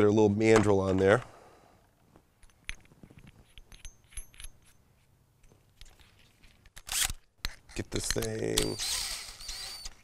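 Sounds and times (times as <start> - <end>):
small metal clinks and taps: 2.4 - 4.8.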